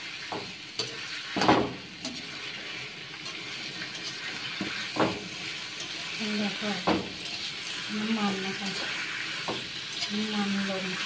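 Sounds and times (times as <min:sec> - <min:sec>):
squid sizzling in hot oil: 0:00.0 - 0:11.0
metal utensil clicking on pan: 0:00.3 - 0:02.4, 0:03.1 - 0:11.0.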